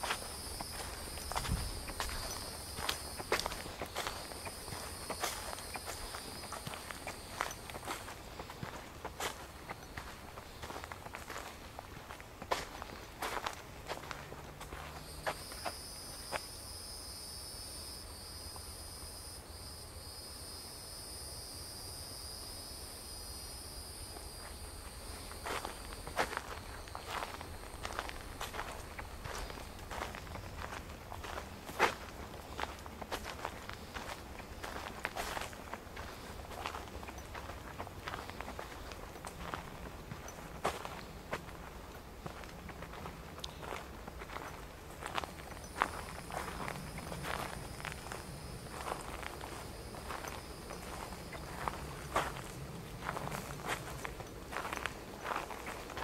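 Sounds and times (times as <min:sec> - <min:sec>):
high insect buzz: 0:00.0 - 0:10.9, 0:15.0 - 0:32.0
footsteps crunching on dirt trail: 0:00.0 - 0:16.5, 0:24.0 - 0:56.0.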